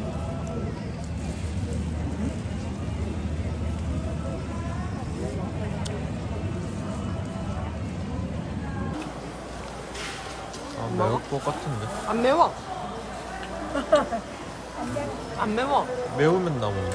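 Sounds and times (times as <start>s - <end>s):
indistinct voices: 0.0s - 16.9s.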